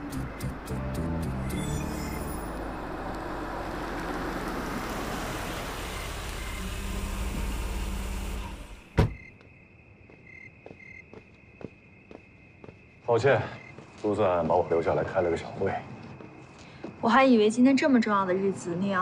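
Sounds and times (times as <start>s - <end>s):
car engine and tyre noise: 0.0s - 9.5s
insect chirping: 0.0s - 19.0s
car door slamming: 8.6s - 9.3s.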